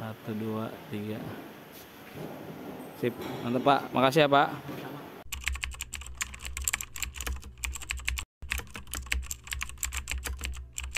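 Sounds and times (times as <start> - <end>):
rapid irregular clicking: 5.3 - 10.9.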